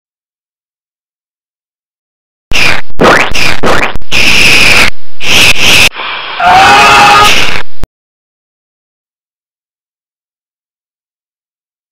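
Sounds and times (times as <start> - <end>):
harsh hissing noise: 2.5 - 7.8.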